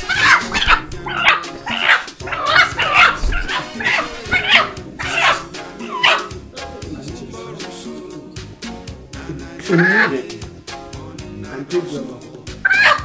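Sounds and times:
dog barking and yelping: 0.0 - 6.4, 12.6 - 13.0
background music: 0.0 - 13.0.

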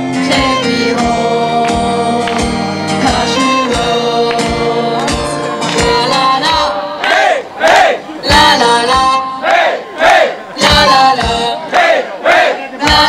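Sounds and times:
live band: 0.0 - 7.0
crowd singing in unison: 0.0 - 13.0.

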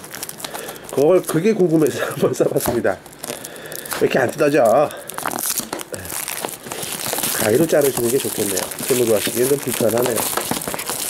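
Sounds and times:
plastic film wrap crinkling: 0.0 - 11.0.

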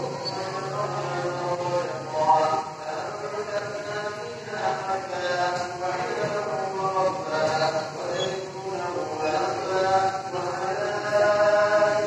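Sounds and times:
person chanting a recitation: 0.0 - 12.0.

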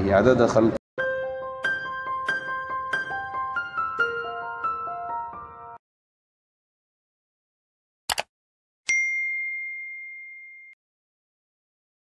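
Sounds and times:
bell ding: 8.9 - 10.8.

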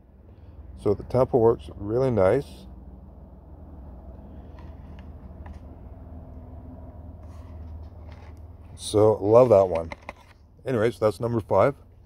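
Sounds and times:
low outdoor rumble: 0.0 - 12.0.

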